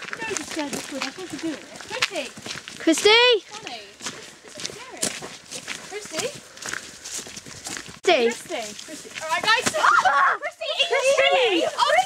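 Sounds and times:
footsteps in undergrowth: 0.0s - 12.0s
quiet voices talking: 8.0s - 12.0s.

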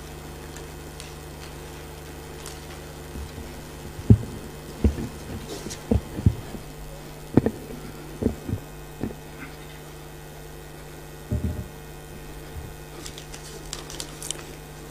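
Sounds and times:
electrical hum from loudspeakers: 0.0s - 14.9s
low thumps: 3.0s - 9.4s, 11.1s - 13.0s.

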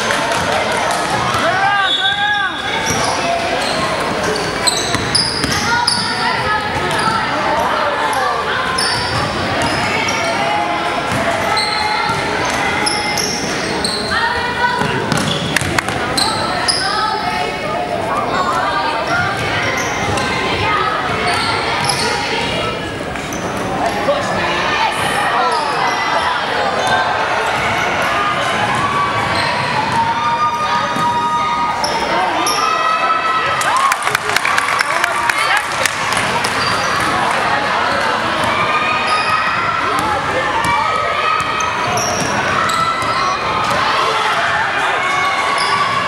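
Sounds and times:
voices in large hall: 0.0s - 46.0s
sneaker squeaks: 1.3s - 10.5s, 11.1s - 17.2s, 19.0s - 20.4s, 21.0s - 23.8s, 25.4s - 30.0s, 31.8s - 32.8s, 36.4s - 37.2s, 38.9s - 43.9s, 45.2s - 46.0s.

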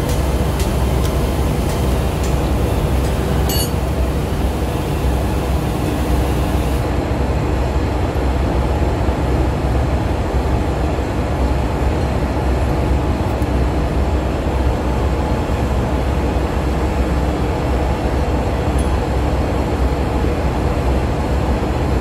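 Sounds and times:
engine-room machinery drone: 0.0s - 22.0s
spanner clinking on metal: 3.5s - 3.8s.

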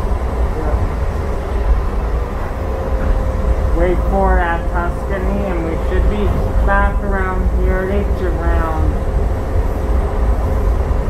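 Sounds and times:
faint steady whine: 0.0s - 11.0s
light rail car rumbling on track: 0.0s - 11.0s.

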